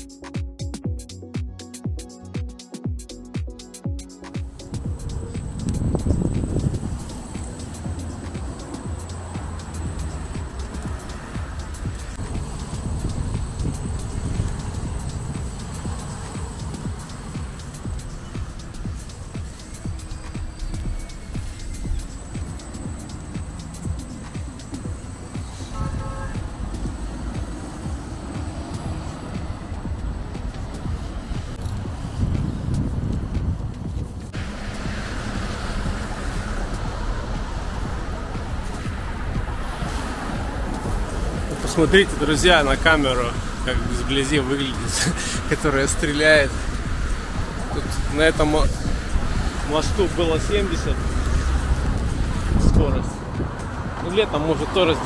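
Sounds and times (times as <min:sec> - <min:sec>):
road traffic rumble: 0:03.1 - 0:55.0.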